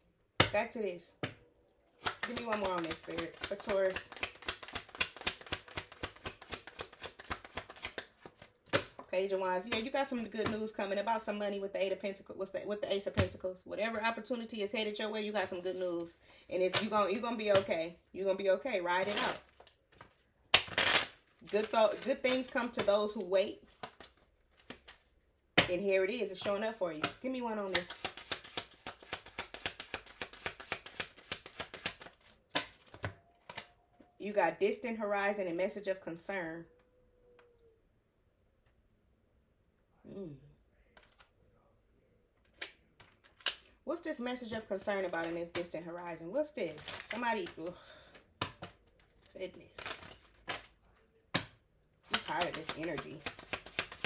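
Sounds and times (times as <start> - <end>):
cards snapping: 2.0 - 9.0, 27.8 - 33.7, 41.0 - 41.3, 42.4 - 43.7, 51.4 - 54.0
cards shuffling: 2.0 - 9.1, 19.0 - 25.1, 27.7 - 33.7, 40.9 - 41.3, 42.4 - 43.7, 48.4 - 50.8, 51.4 - 54.0.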